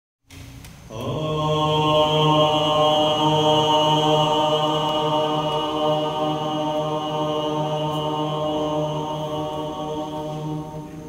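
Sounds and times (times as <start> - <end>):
group chanting a held note: 0.9 - 11.0.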